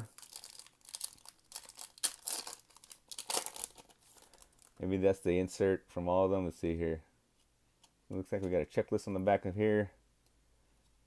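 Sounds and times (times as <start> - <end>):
foil wrapper crinkling: 0.0 - 4.8.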